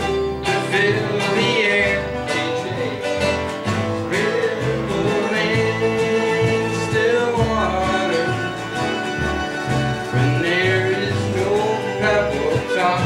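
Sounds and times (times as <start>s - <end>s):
strummed acoustic guitars: 0.0s - 13.0s.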